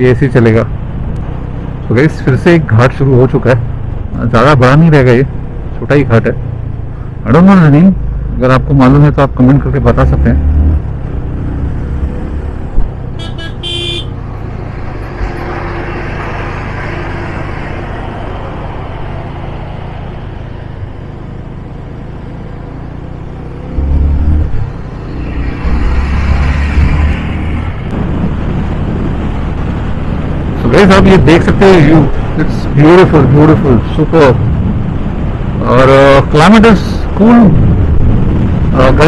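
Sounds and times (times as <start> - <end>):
wind rush: 10.2 - 22.1, 23.2 - 39.0
horn toot: 13.1 - 14.2.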